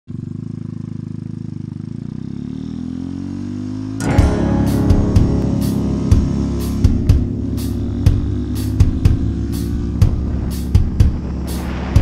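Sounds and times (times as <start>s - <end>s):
motorcycle engine accelerating: 0.1s - 12.0s.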